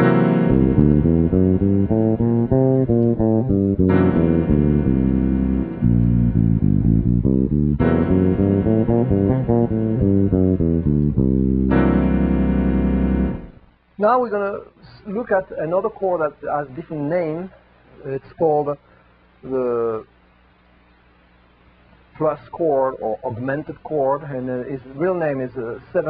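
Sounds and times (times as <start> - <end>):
bass guitar scale runs: 0.0 - 13.6
keyboard chord: 0.0 - 13.7.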